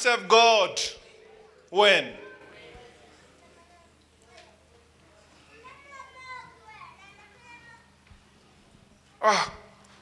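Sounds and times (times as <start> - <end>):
hum of hall: 0.0 - 10.0
people chattering: 0.0 - 10.0.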